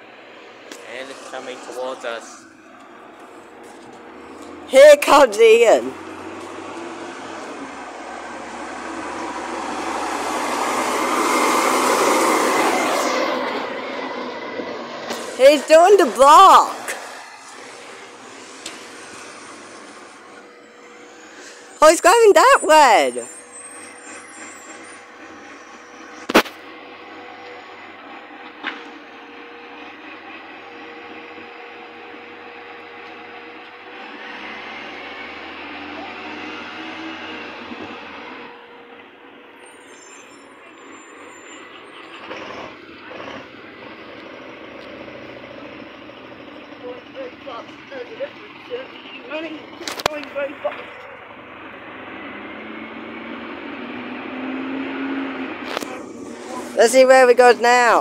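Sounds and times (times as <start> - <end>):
distant garbage truck engine: 0.0 - 58.0.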